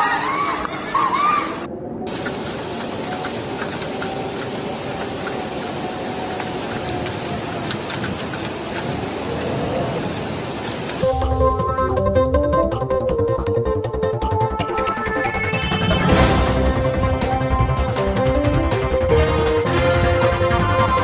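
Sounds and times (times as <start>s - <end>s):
rushing floodwater: 0.0s - 11.0s
electronic music: 11.0s - 21.0s.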